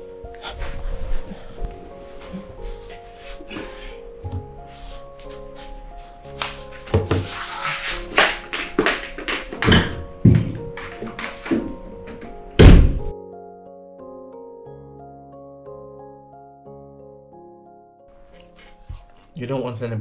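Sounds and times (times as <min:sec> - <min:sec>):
soft background music: 0:00.0 - 0:20.0
knocks and thuds: 0:12.6 - 0:13.1.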